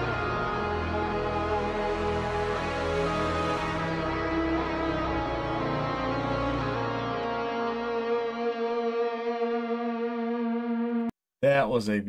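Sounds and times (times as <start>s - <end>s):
sustained electric guitar chord: 0.0s - 11.1s.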